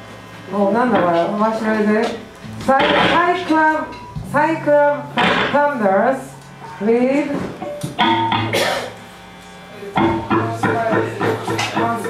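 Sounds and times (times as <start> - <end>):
faint amplifier hum: 0.0 - 12.0
loud amplified electric guitar music: 2.2 - 6.6, 7.4 - 9.0, 10.0 - 12.0.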